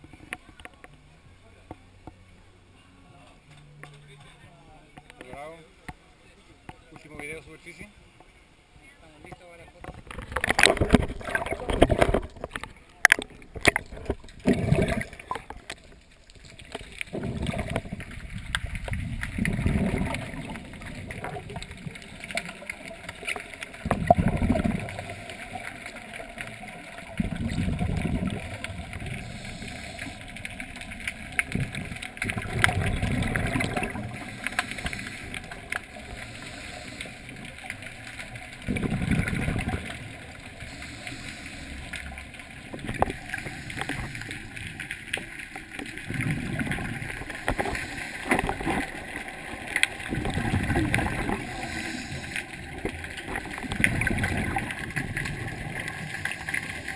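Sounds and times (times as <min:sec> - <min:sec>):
underwater regulator bubbles: 0:09.8 - 0:56.9.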